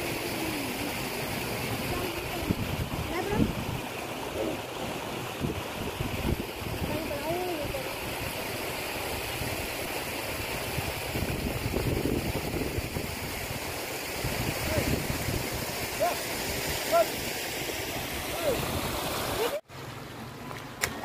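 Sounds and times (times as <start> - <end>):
floodwater rushing: 0.0 - 21.0.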